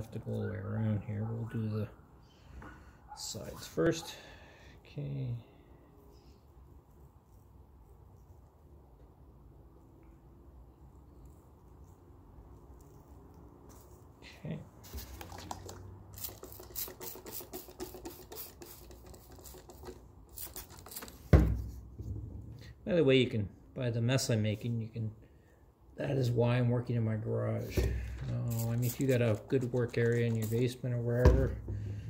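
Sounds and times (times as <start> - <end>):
scratchy rustles and taps: 14.8 - 21.2
loud thump: 21.3 - 22.5.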